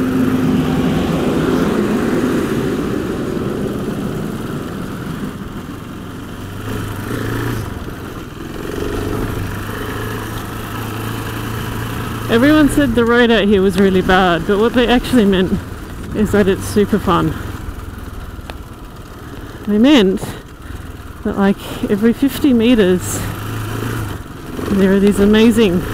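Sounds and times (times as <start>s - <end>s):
motorcycle engine running: 0.0s - 25.9s
road noise: 0.0s - 25.9s.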